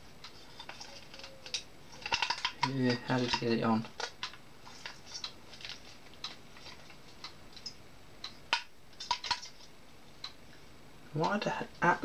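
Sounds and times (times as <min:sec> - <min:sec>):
small metal and plastic parts clicking: 0:00.2 - 0:07.8.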